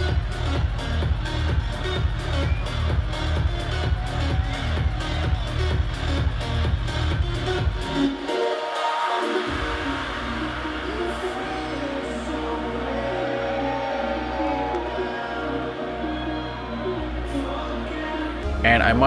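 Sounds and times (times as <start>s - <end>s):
electronic dance music: 0.0s - 19.0s
low bass line: 9.8s - 19.0s.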